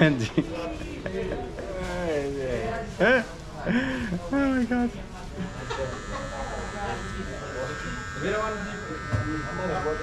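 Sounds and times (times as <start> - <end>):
electric hair trimmer buzzing: 5.4 - 10.0.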